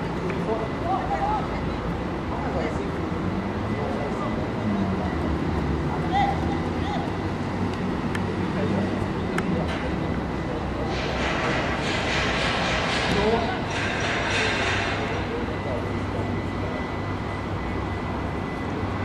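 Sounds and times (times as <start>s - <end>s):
rushing noise: 10.6s - 19.0s.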